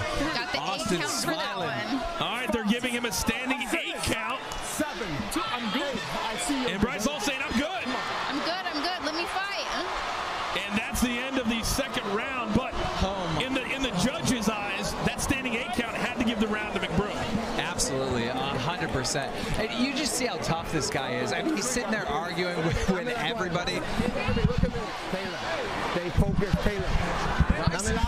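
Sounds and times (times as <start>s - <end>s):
people talking: 0.0s - 9.9s, 10.6s - 25.4s, 26.0s - 28.0s.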